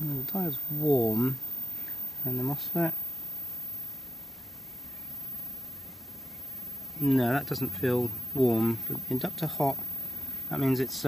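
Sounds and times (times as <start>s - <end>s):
low rumble with light hiss: 0.0s - 11.0s.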